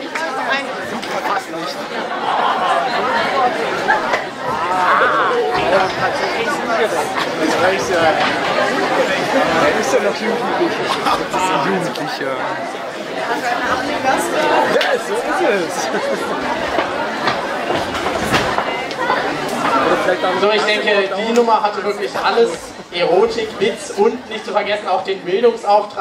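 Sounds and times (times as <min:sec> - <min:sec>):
audience chatter: 0:00.0 - 0:26.0.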